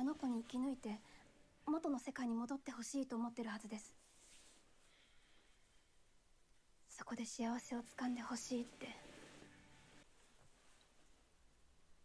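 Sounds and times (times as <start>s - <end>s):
person speaking: 0.0s - 4.0s, 7.0s - 9.4s.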